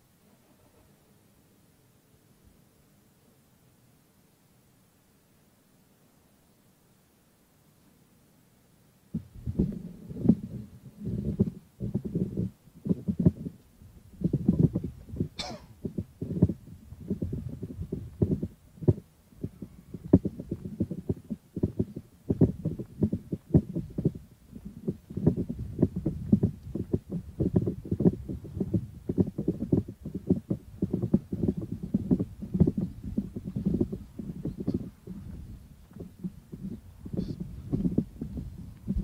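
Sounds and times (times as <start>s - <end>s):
wind buffeting microphone: 9.1s - 39.0s.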